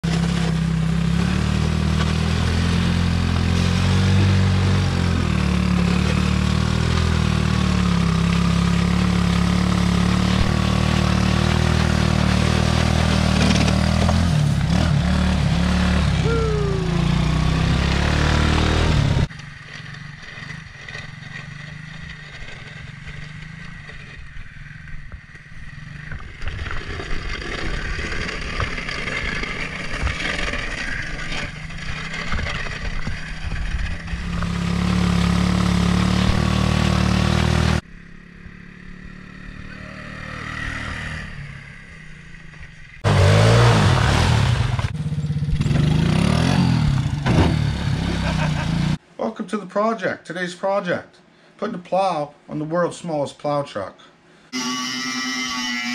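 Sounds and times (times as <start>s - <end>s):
small engine running: 0.0s - 42.4s.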